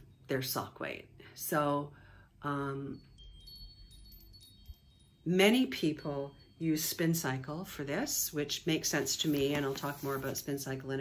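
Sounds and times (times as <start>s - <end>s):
faint metallic chimes: 0.0s - 8.5s.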